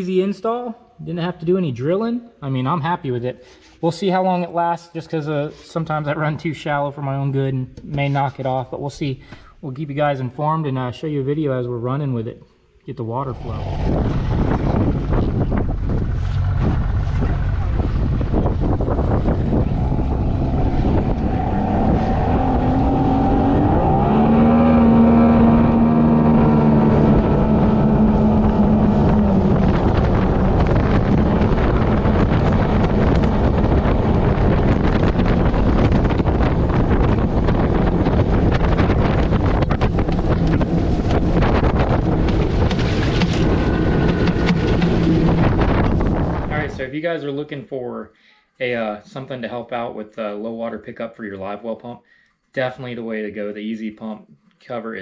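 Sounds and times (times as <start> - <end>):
wind buffeting microphone: 13.2 - 46.9
outboard motor running: 13.7 - 46.7.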